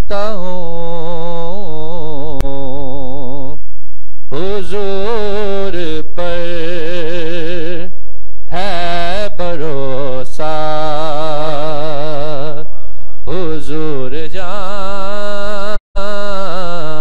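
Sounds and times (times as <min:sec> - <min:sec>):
man singing into microphone: 0:00.0 - 0:03.6, 0:04.3 - 0:17.0.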